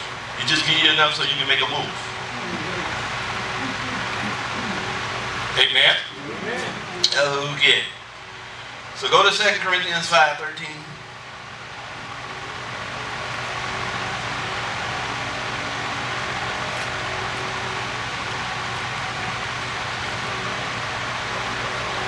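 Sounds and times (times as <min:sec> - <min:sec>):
electric fan hissing: 0:00.0 - 0:22.0
faint hum: 0:00.0 - 0:22.0.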